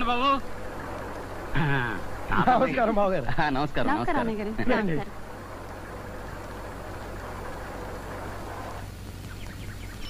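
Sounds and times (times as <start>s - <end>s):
bus engine rumbling: 0.0s - 9.1s.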